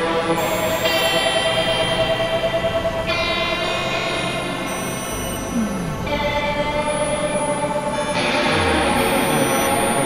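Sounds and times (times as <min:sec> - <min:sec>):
bell-like synth drones: 0:00.0 - 0:10.0
experimental electronic music: 0:00.0 - 0:10.0.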